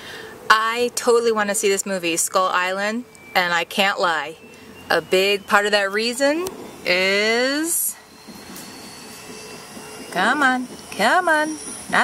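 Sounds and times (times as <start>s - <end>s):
helicopter drone: 3.4s - 12.0s.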